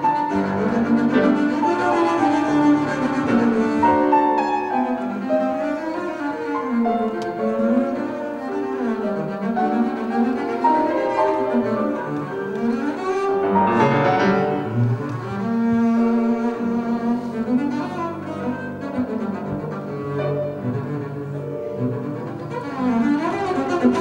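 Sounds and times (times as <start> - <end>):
bowed double bass runs: 0.0 - 24.0
grand piano accompaniment: 0.0 - 24.0.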